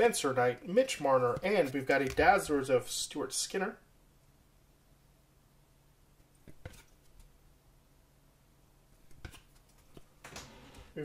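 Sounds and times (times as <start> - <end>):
trading cards rustling: 1.3 - 2.7.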